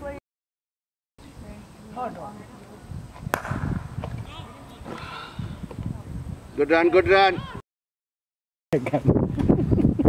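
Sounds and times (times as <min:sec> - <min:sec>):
cricket bat striking ball: 0:03.3 - 0:04.3.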